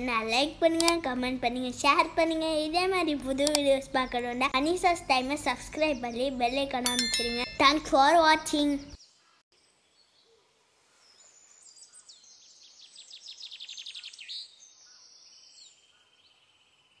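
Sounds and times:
faint bird song chirps and trill: 3.7 - 17.0.

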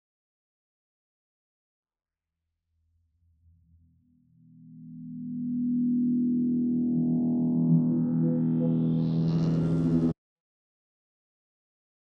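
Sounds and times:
low synth riser tone: 4.6 - 10.2.

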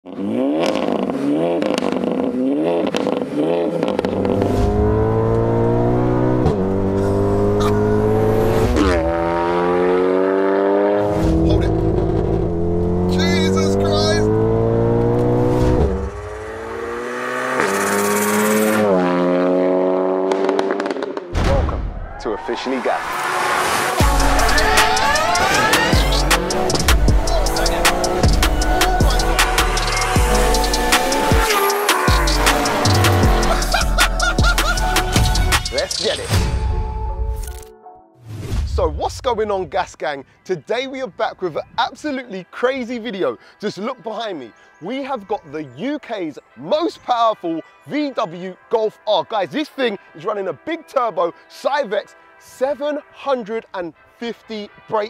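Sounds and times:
car engine accelerating hard: 0.0 - 21.3, 23.0 - 35.8.

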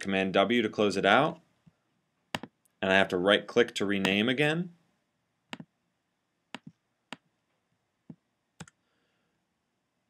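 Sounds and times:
mouse and keyboard clicks: 2.4 - 2.6.

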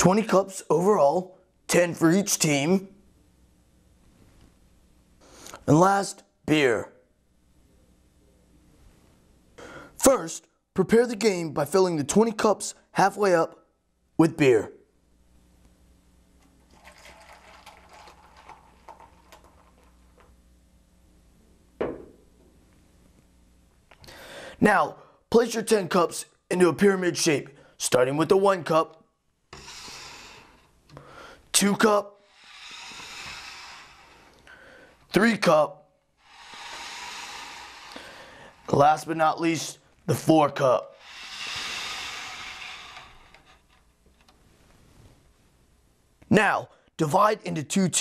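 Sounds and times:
steady background hiss: 0.0 - 48.0
beer pouring fizzing: 16.6 - 20.0.

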